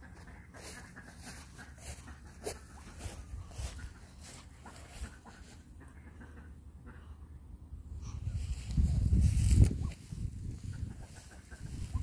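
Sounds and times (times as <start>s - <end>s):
wind on microphone: 7.9s - 12.0s.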